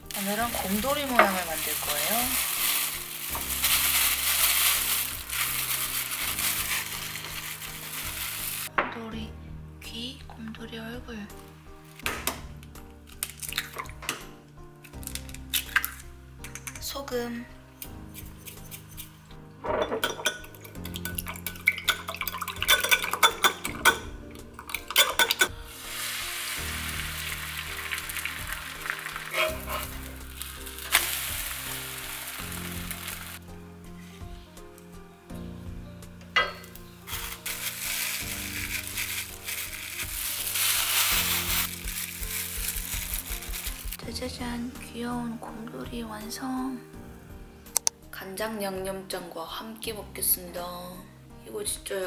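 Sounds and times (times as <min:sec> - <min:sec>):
egg sizzling in pan: 0:00.0 - 0:08.7, 0:20.8 - 0:23.6, 0:24.6 - 0:33.4, 0:37.1 - 0:44.0.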